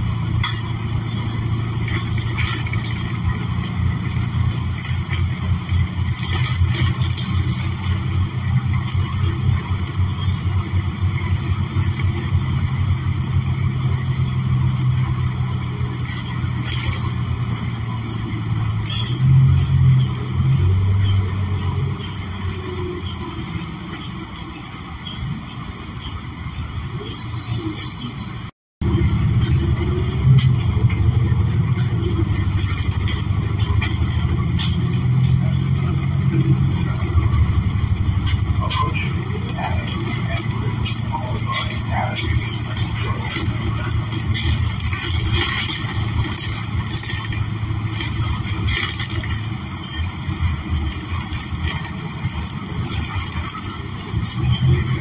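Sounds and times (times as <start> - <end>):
bus engine running: 0.0 - 55.0.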